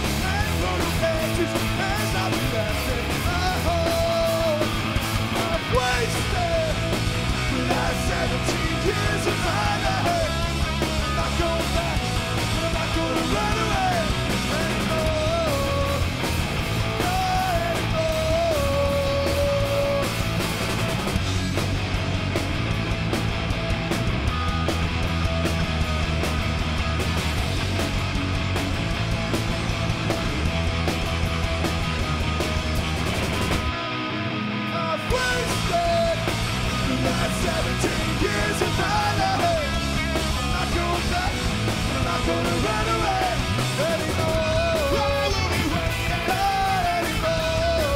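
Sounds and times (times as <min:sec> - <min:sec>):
distorted electric guitars: 0:00.0 - 0:47.9
punk rock band playing: 0:00.0 - 0:47.9.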